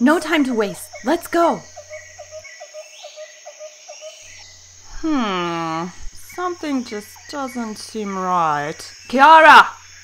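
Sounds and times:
insect-like chirps: 0.0s - 10.0s.

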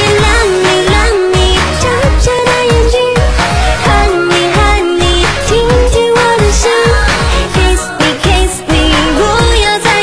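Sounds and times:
pop backing track: 0.0s - 10.0s.

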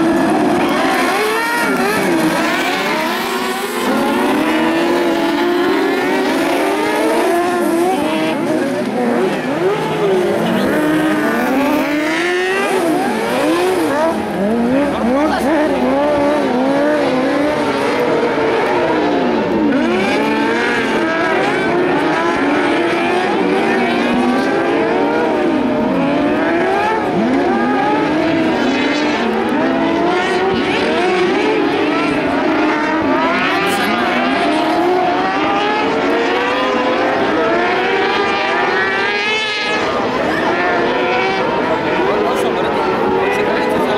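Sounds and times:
buggy engines revving: 0.0s - 43.9s.

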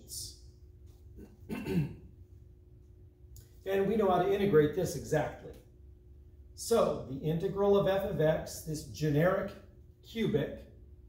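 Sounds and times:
man clearing his throat: 1.2s - 2.1s.

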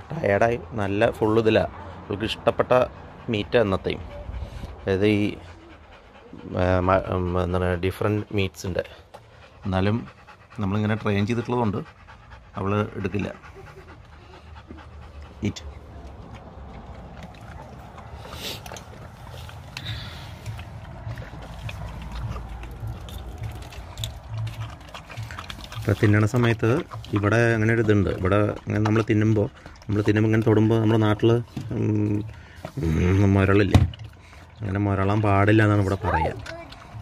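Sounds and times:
dog panting: 0.0s - 37.0s.

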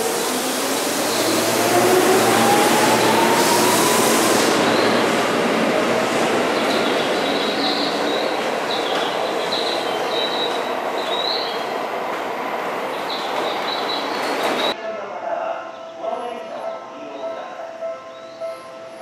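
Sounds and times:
train wheel and track noise: 0.0s - 14.8s.

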